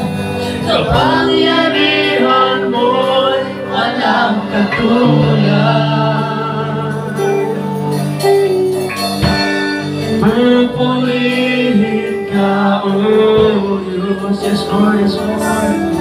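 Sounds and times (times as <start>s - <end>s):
man singing into a microphone: 0.0s - 7.8s, 10.0s - 16.0s
band with electric guitar: 0.0s - 16.0s.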